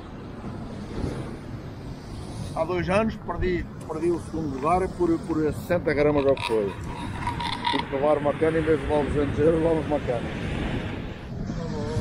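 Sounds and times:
surf washing: 0.0s - 12.0s
wind rumbling on microphone: 0.0s - 12.0s.

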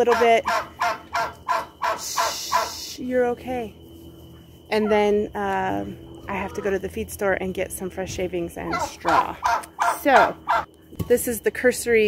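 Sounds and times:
poultry short falling calls: 0.4s - 2.8s.

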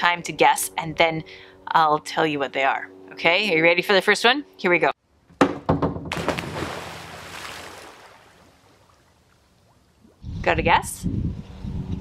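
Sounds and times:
loud splash into pool: 6.1s - 8.9s
water sloshing: 6.1s - 10.2s.

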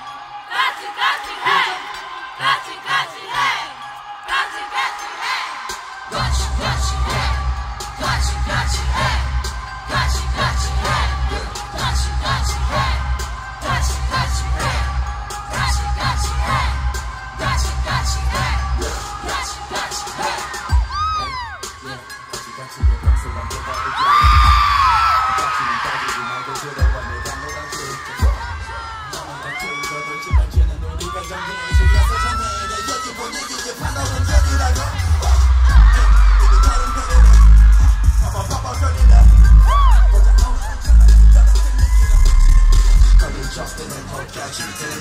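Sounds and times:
concert music with bass beat: 0.0s - 45.0s
fans screaming and whooping: 0.0s - 45.0s.

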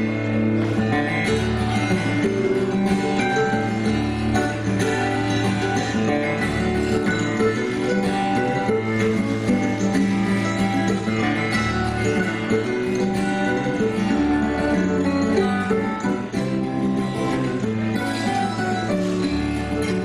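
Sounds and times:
acoustic guitar playing: 0.0s - 20.0s
mandolin melody: 0.0s - 20.0s.

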